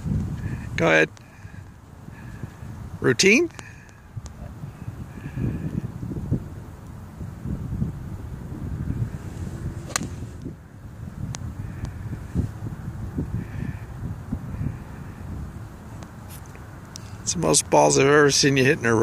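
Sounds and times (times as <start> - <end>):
wind buffeting microphone: 0.0 - 17.6
golf club striking ball: 9.8 - 10.5.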